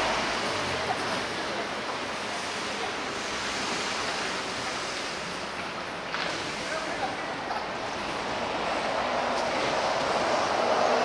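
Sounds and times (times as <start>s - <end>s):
city street ambience: 0.0s - 11.0s.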